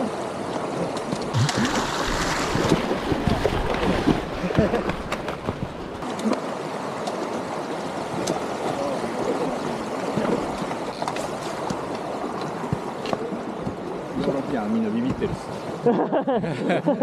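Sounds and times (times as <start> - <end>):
stream running over rocks: 0.0 - 15.9.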